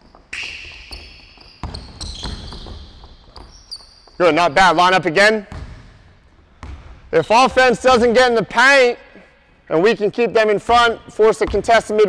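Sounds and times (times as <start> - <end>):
shoes squeaking on hardwood: 0.0 - 4.2
basketball bouncing: 0.1 - 4.2, 5.5 - 7.6, 10.6 - 11.7.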